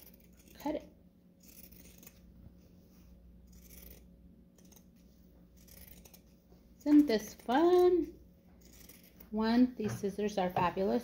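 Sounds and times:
shears snipping fabric: 0.0s - 2.3s, 3.5s - 10.9s.

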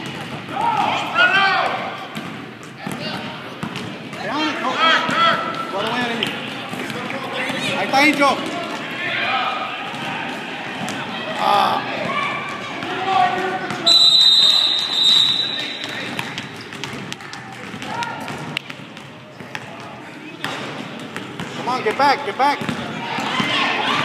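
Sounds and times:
crowd voices: 0.0s - 24.0s
basketball bouncing: 2.2s - 4.3s, 15.7s - 21.6s, 22.5s - 23.4s
shrill whistle blast: 13.8s - 15.8s.

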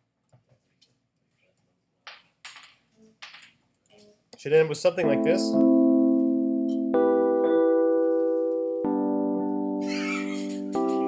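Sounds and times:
person murmuring mm-hmm: 9.8s - 11.0s.

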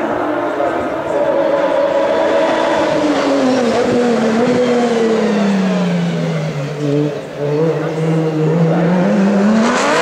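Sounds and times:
race car engine approaching: 0.0s - 10.0s.

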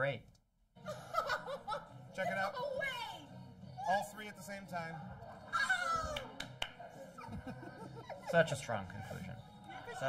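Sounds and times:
sharp claps: 6.1s - 6.8s.

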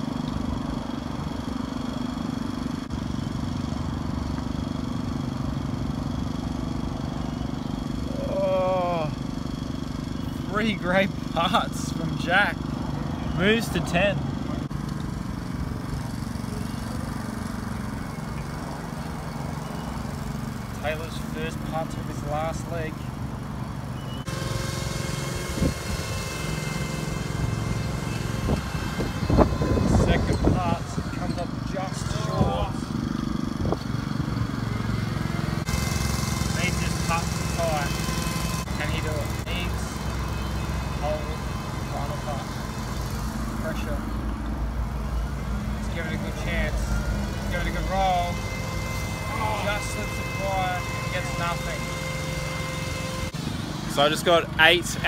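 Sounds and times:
lawn mower engine droning: 0.0s - 55.0s
steady whine: 0.0s - 55.0s.

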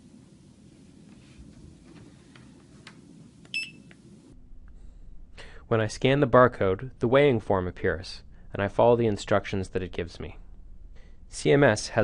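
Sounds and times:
barcode scanner beep: 3.5s - 3.9s.

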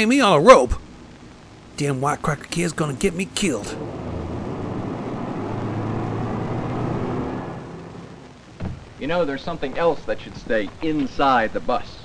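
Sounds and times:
road noise: 1.8s - 9.3s.

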